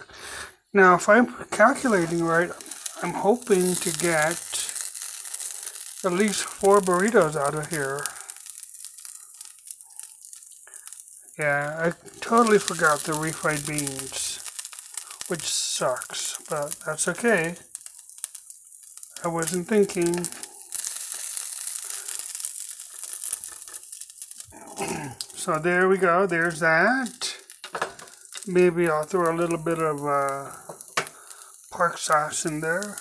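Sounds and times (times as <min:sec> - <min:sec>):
meat sizzling in a frying pan: 0:00.0 - 0:33.0
plastic packaging crinkling: 0:01.5 - 0:33.0.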